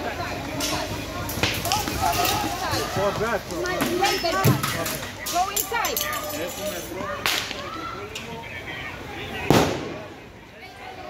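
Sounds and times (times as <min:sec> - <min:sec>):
voices: 0:00.0 - 0:11.0
loud sharp bang: 0:09.5 - 0:10.1.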